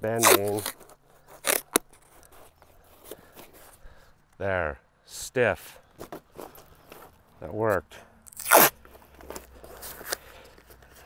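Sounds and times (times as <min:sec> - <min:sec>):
cardboard crunch: 0:00.0 - 0:03.8, 0:08.4 - 0:11.0
faint rustling: 0:00.4 - 0:04.3, 0:05.8 - 0:07.4.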